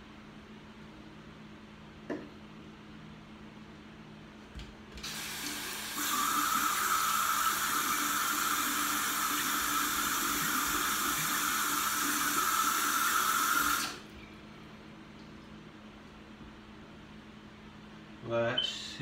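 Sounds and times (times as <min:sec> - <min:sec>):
tap water running into basin: 0:05.0 - 0:14.0.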